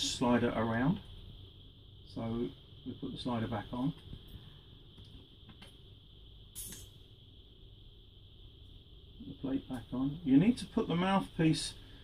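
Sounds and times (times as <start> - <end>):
steady high hum: 0.0 - 12.0.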